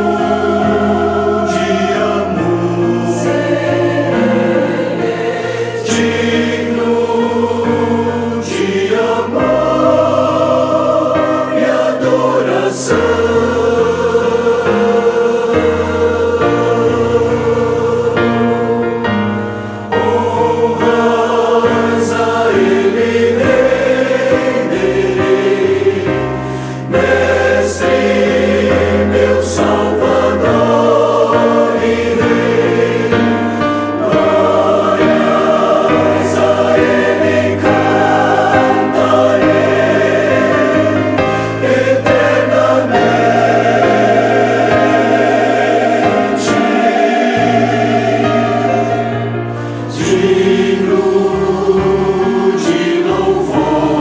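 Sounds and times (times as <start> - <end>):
choir singing a hymn: 0.0 - 54.0.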